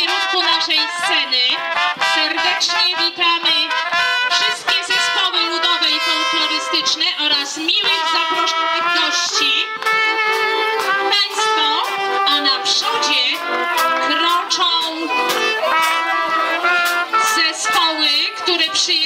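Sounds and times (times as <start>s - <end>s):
accordion and fiddle folk tune: 0.0s - 19.0s.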